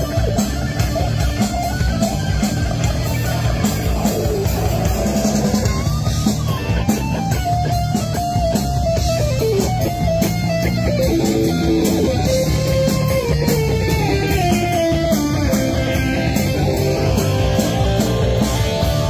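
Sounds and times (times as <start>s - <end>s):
guitar sliding melody: 0.0s - 19.0s
rock band playing: 0.0s - 19.0s.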